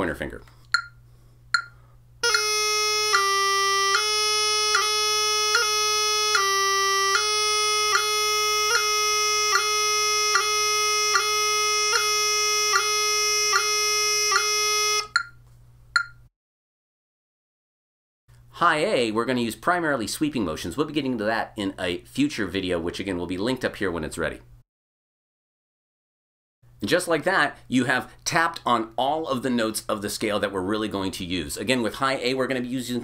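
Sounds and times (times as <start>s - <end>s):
metronome clicks: 0.6s - 2.5s, 14.3s - 15.4s, 16.0s - 16.2s
practice chanter notes: 2.2s - 15.2s.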